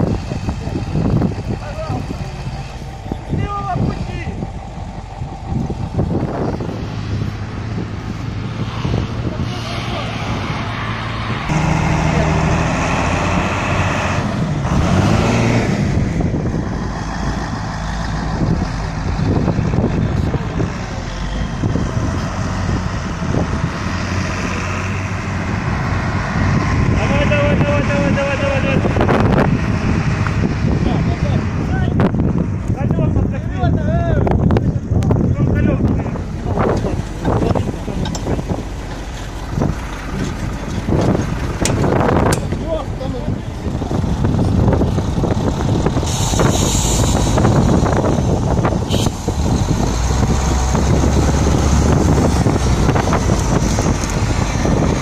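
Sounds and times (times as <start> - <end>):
heavy vehicle engines humming: 0.0 - 55.0
wind buffeting microphone: 0.0 - 55.0.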